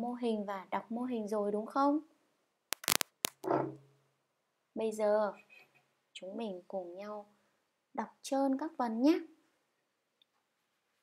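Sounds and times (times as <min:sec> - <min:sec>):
sharp short clicks: 0:02.7 - 0:03.5.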